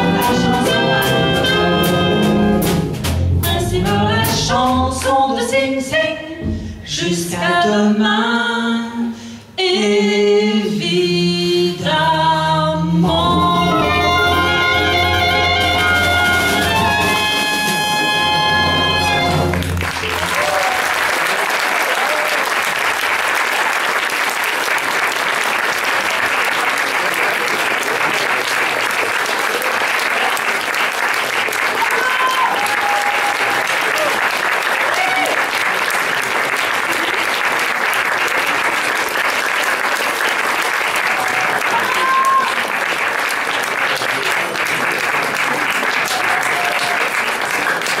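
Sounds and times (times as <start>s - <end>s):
crowd calls: 14.3s - 22.5s
audience applause: 14.4s - 48.0s.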